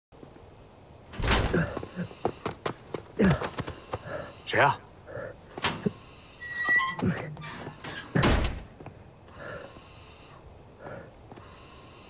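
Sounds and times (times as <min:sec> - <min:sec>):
metal door clunking and squeaking: 0:01.1 - 0:01.8, 0:05.6 - 0:08.8
heavy breathing through a mask: 0:03.4 - 0:08.1, 0:09.2 - 0:12.0.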